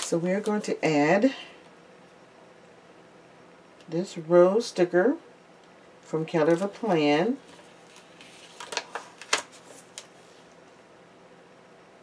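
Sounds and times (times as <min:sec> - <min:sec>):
sticker sheet crinkling: 0:06.4 - 0:10.1.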